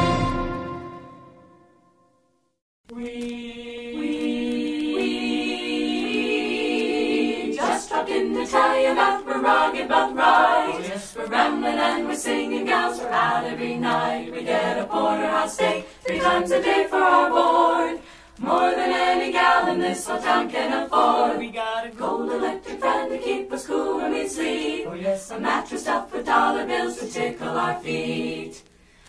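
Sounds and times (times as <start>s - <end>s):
vocal group singing in harmony: 2.9s - 28.8s.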